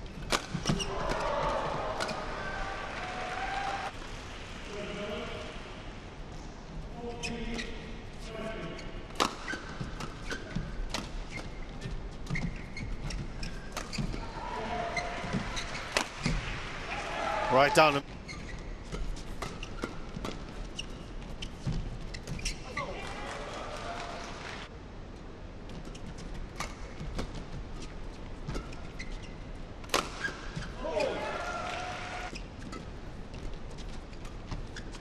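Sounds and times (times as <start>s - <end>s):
voices in hall: 14.1s - 18.1s, 22.6s - 24.7s.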